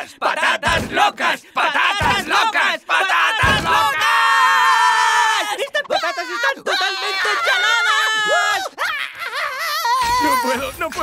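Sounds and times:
cartoon voices yelling and screaming: 0:00.0 - 0:11.0.

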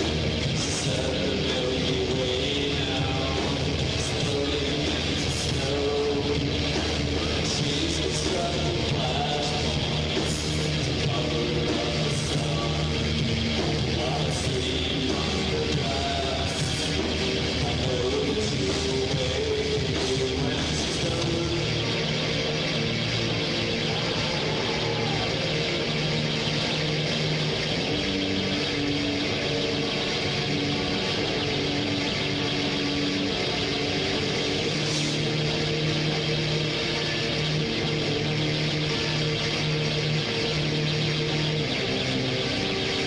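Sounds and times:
rock band playing: 0:00.0 - 0:43.0.

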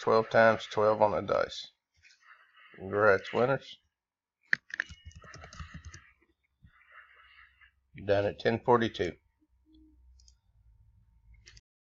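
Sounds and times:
person speaking: 0:00.0 - 0:01.7, 0:02.8 - 0:03.8, 0:08.0 - 0:09.2
computer mouse click: 0:04.5 - 0:06.0.

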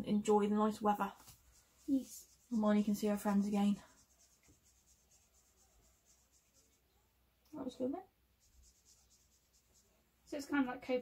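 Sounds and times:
pens scratching on paper: 0:00.3 - 0:06.9, 0:08.4 - 0:10.5.

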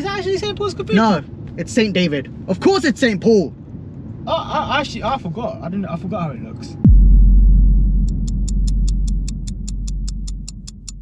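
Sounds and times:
deep boom dropping in pitch: 0:06.8 - 0:11.0
long low rumble: 0:06.8 - 0:11.0
clock ticking fast: 0:08.0 - 0:11.0.

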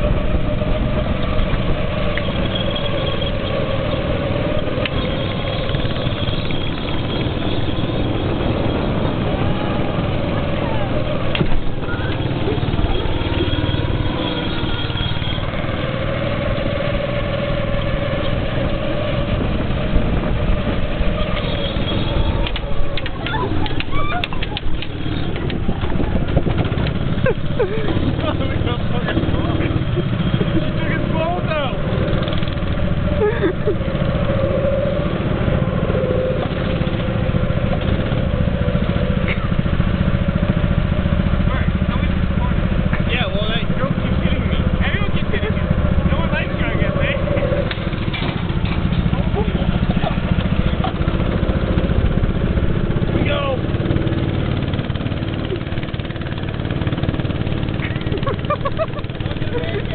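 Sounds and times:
go-kart engines running: 0:00.0 - 0:59.9.

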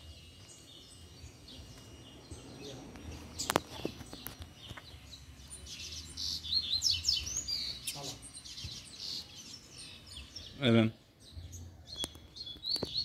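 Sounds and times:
bird singing high chirps and whistles: 0:00.0 - 0:13.0.

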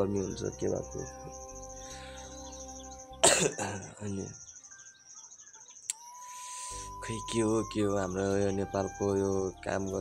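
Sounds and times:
man coughing: 0:03.2 - 0:04.1
insect chirring: 0:03.8 - 0:07.5.

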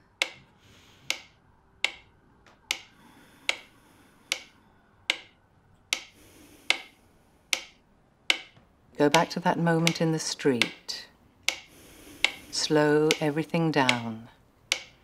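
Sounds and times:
sharp ticking: 0:00.1 - 0:15.0.

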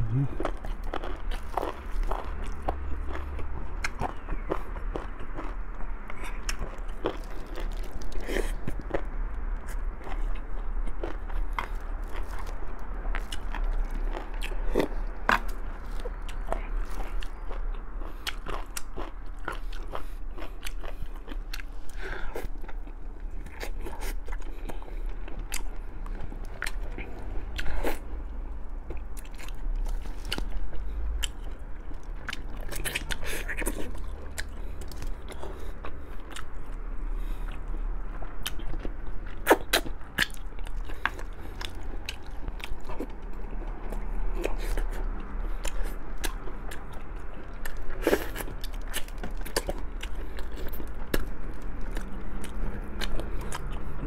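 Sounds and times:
man chewing: 0:00.0 - 0:54.0.

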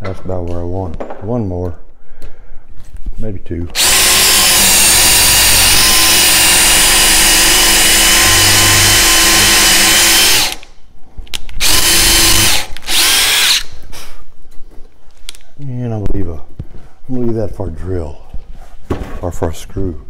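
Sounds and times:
drill motor whine: 0:03.8 - 0:10.6, 0:11.6 - 0:13.7.

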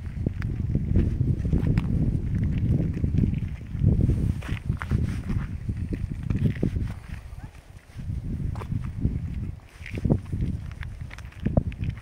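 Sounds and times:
footsteps crunching on stone path: 0:00.0 - 0:12.0.

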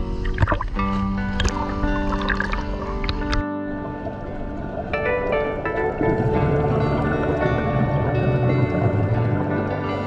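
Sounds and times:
background music with held chords: 0:00.0 - 0:10.0
water splashing: 0:00.0 - 0:10.0.

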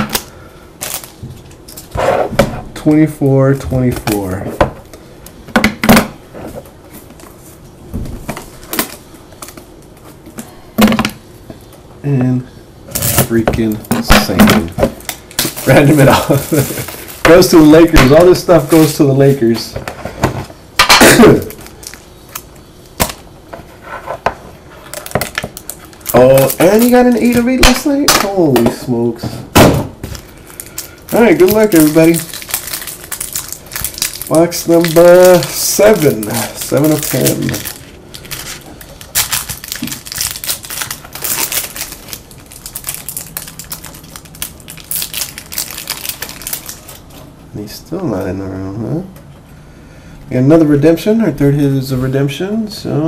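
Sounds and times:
packaging crinkling: 0:00.0 - 0:01.9, 0:12.9 - 0:19.7, 0:21.1 - 0:23.2, 0:24.8 - 0:28.6, 0:30.1 - 0:47.2.

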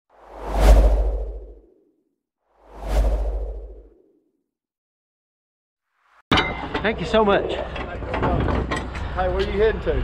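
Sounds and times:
whoosh sound effects: 0:00.2 - 0:01.7, 0:02.6 - 0:04.0.

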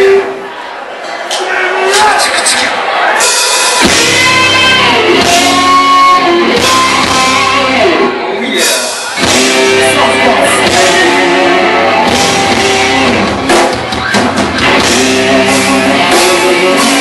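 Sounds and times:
hard rock band playing: 0:01.9 - 0:17.0.

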